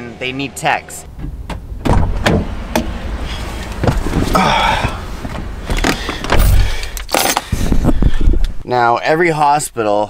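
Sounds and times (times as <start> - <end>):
dull thump: 1.1 - 3.0, 3.6 - 6.8.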